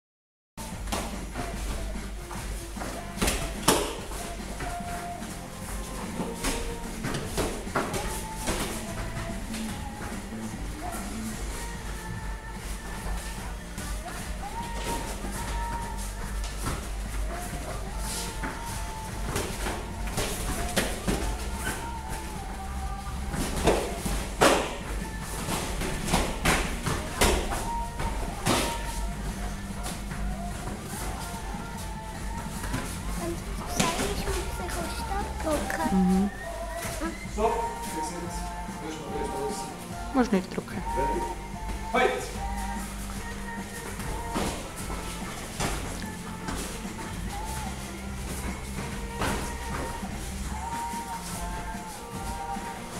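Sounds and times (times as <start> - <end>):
background music: 0.6 - 52.9
gloved punches and kicks landing: 0.8 - 4.9, 23.3 - 30.5.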